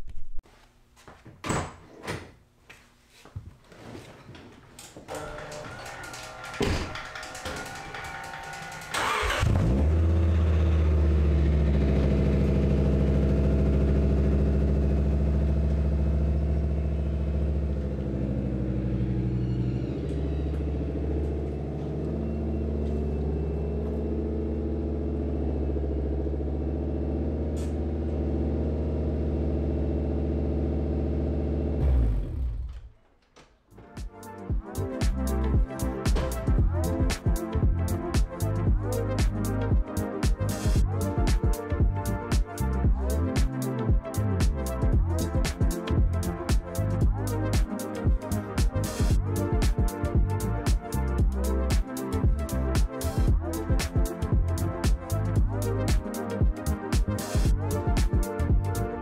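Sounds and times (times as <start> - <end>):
clicks and knocks: 4.4 - 9.0
car engine starting and idling: 5.1 - 33.1.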